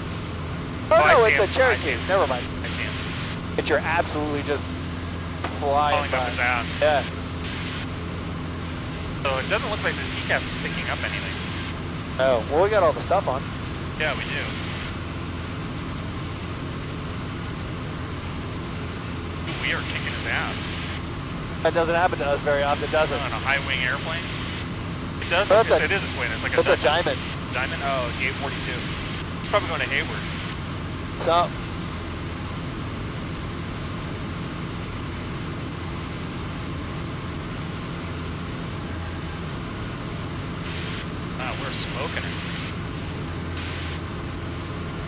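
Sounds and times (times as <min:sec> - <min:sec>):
airplane engine and propeller droning: 0:00.0 - 0:45.0.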